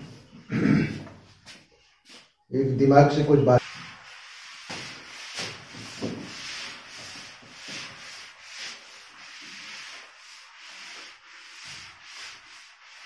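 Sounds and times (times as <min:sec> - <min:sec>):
whiteboard being erased: 0:03.5 - 0:13.0.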